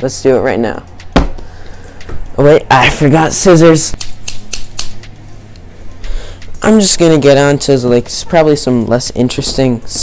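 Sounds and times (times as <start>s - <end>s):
scissors snipping: 4.0s - 5.0s.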